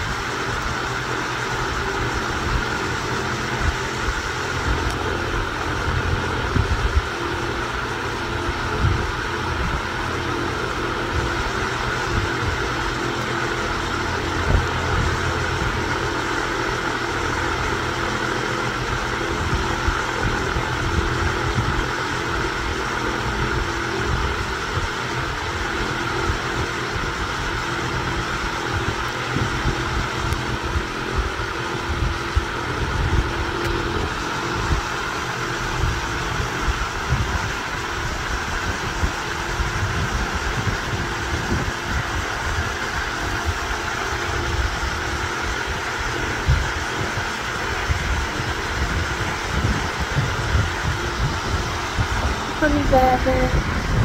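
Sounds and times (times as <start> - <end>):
mechanical motor drone: 0.0 - 54.0.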